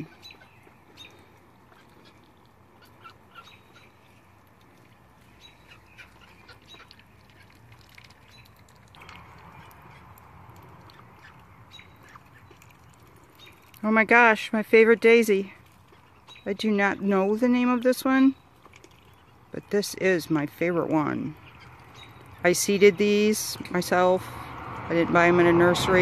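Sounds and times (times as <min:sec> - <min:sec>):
bird chirps and calls: 0:00.0 - 0:04.3, 0:05.2 - 0:10.1, 0:10.9 - 0:12.7, 0:16.0 - 0:17.4, 0:21.2 - 0:23.6.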